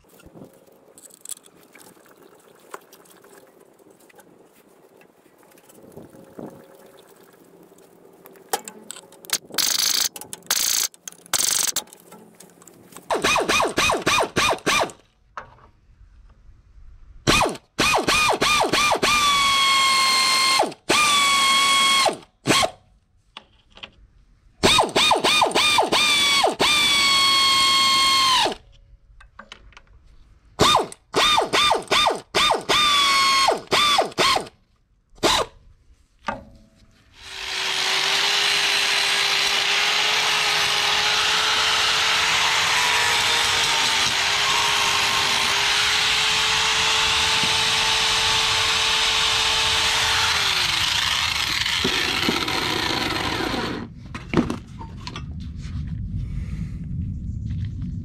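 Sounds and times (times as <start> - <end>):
pneumatic ratchet whining: 9.3 - 11.8
angle grinder running: 37.2 - 53.9.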